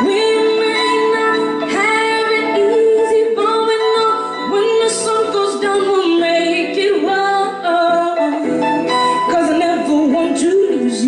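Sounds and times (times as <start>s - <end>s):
electric guitar: 0.0s - 11.0s
keyboard accompaniment: 0.0s - 11.0s.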